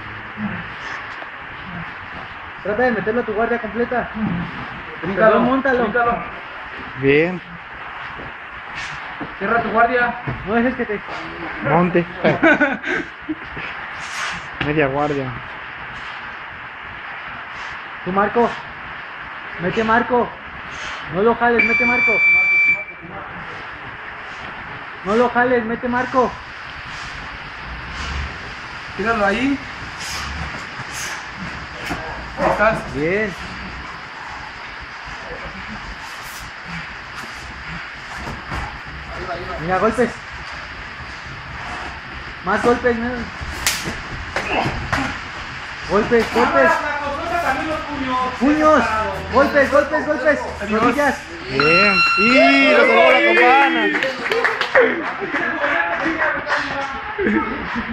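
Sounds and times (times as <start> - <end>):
steady background noise: 0.0 - 57.9.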